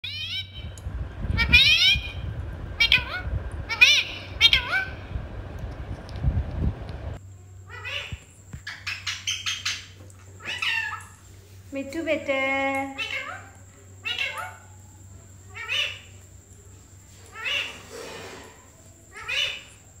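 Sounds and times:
parakeet squawking: 2.8s - 5.0s, 17.4s - 17.9s.

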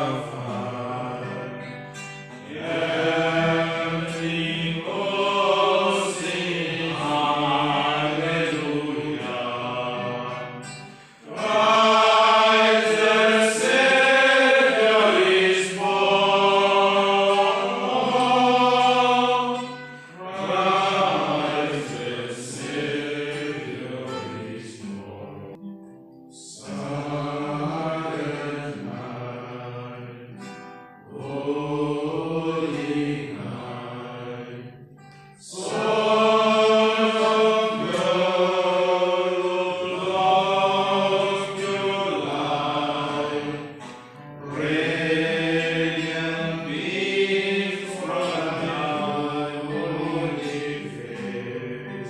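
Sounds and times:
men singing a hymn in unison: 0.0s - 25.6s, 26.4s - 52.0s.

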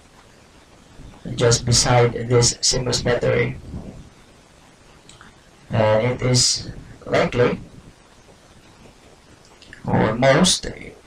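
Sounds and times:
faint hiss: 0.0s - 11.0s
man speaking: 1.2s - 4.0s, 5.7s - 7.7s, 9.7s - 11.0s.

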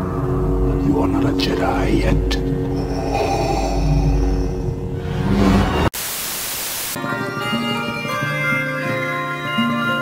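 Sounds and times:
dark trailer music: 0.0s - 5.9s
deep rumble: 0.0s - 5.9s
hissing white-noise static: 5.7s - 7.0s.

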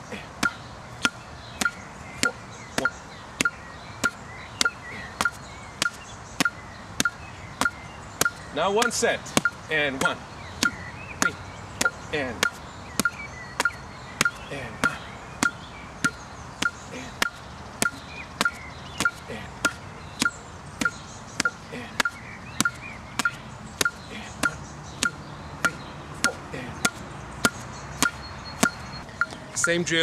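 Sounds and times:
boxing gloves striking: 0.4s - 2.4s, 3.4s - 28.8s.

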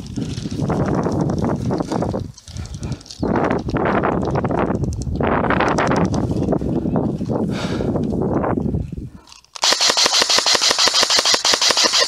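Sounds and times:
airsoft rifle full-auto burst: 9.6s - 12.0s.

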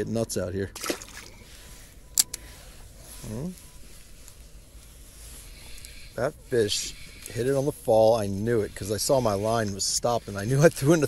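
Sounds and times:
fish splashing into water: 0.8s - 1.4s.

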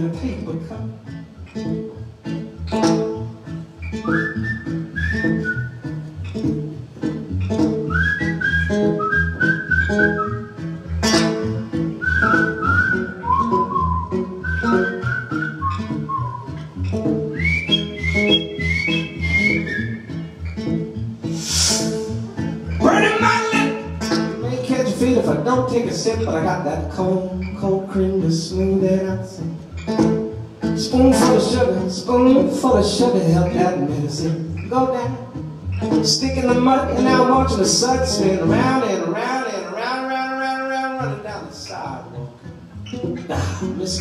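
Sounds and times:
strummed acoustic guitar: 0.0s - 44.0s
man whistling a melody: 3.8s - 6.1s, 7.7s - 10.8s, 11.9s - 20.6s, 21.3s - 22.8s.

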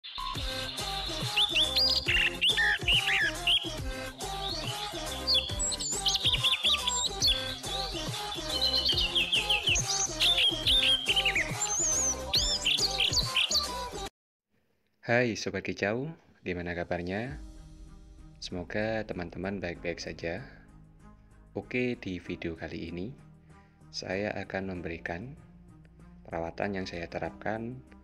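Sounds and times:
bird chirps and whistles: 0.0s - 3.8s, 4.5s - 13.7s
music with steady beat: 0.4s - 10.0s, 17.4s - 21.2s.

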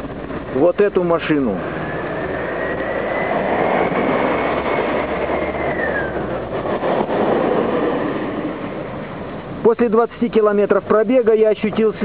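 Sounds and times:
vehicle passing by: 1.0s - 9.6s.

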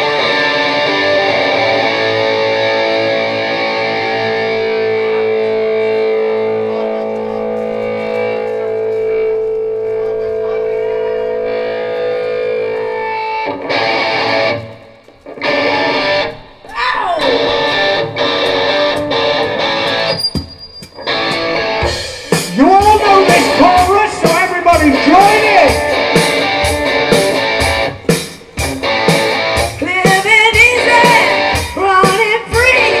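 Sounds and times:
distorted electric guitar: 0.0s - 33.0s.

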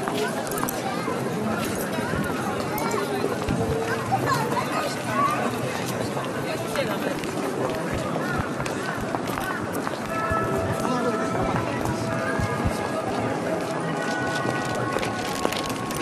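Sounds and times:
crowd chatter: 0.0s - 16.0s
footsteps of people walking: 0.0s - 16.0s.

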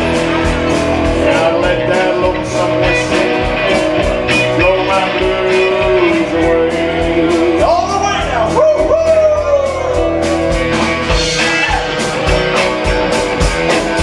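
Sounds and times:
lead guitar line bending: 0.0s - 14.0s
live rock band playing: 0.0s - 14.0s.

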